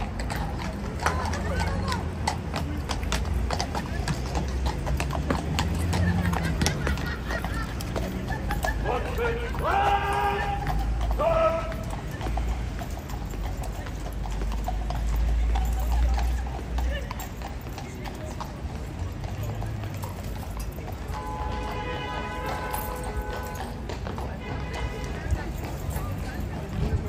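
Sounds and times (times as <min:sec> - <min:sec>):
hooves clip-clopping on pavement: 0:00.0 - 0:27.0.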